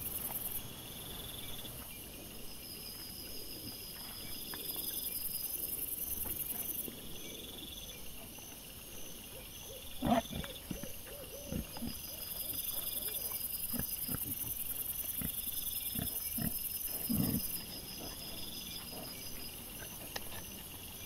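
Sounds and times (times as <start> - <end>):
night insects chirping: 0.0 - 21.0
piglets grunting: 10.0 - 12.0, 15.2 - 18.2.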